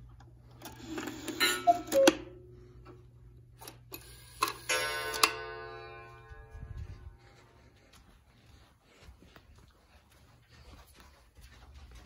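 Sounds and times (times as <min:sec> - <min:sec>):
cuckoo clock call: 0:01.4 - 0:02.3.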